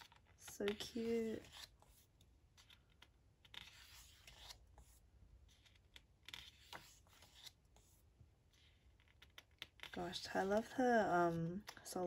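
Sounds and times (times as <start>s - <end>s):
paper pages rustling: 0.0s - 10.8s.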